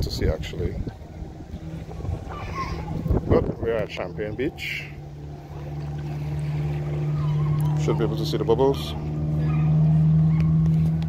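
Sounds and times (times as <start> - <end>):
engine running: 0.0 - 11.0.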